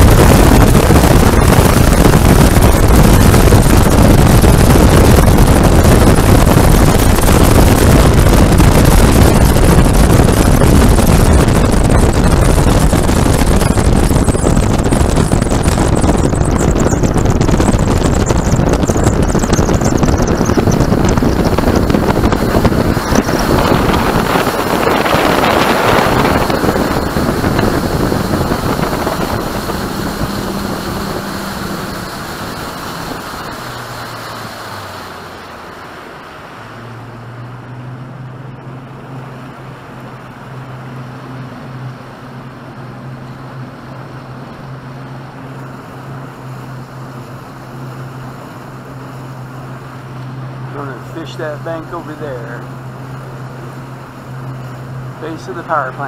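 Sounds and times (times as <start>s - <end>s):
outboard motor running: 0.0s - 56.0s
wind and water rushing: 0.0s - 56.0s.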